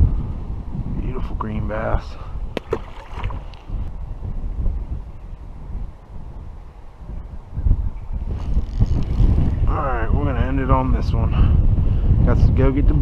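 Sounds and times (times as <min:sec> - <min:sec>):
wind buffeting microphone: 0:00.0 - 0:13.0.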